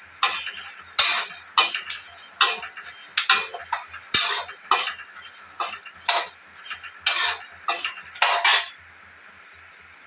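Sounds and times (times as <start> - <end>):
utensils and dishes clinking: 0.2 - 10.0.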